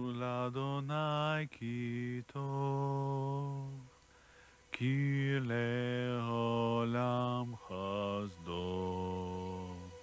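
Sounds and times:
man chanting in long held notes: 0.0s - 4.0s, 4.6s - 10.0s.

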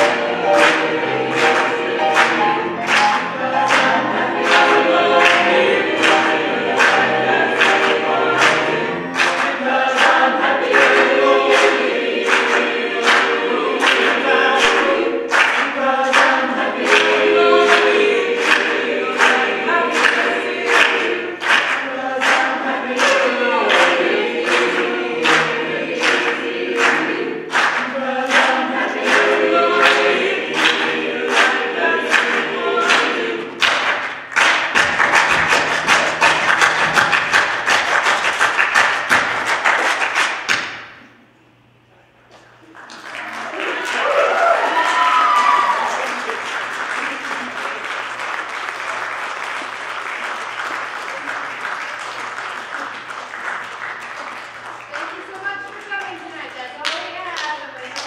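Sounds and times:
mixed choir singing in harmony: 0.0s - 40.4s, 43.3s - 46.9s
hand-clapping on the beat: 0.0s - 41.1s, 42.8s - 58.0s.

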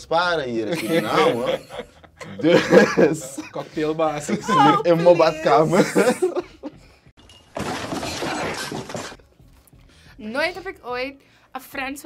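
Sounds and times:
shattering crash: 7.4s - 9.2s.

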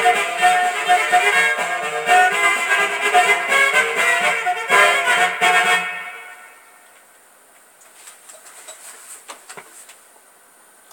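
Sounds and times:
polka music: 0.0s - 6.8s
record surface hiss: 0.0s - 10.9s.

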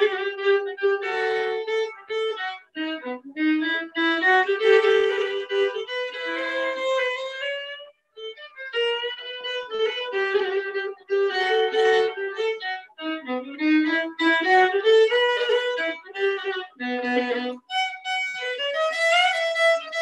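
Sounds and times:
solo violin playing a jig: 0.0s - 20.0s.

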